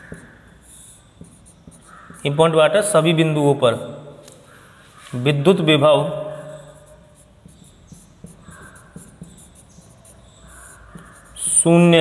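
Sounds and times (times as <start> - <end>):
marker squeaking on whiteboard: 0.0 - 3.3, 6.3 - 12.0
marker tip tapping: 1.2 - 2.3, 7.4 - 11.3.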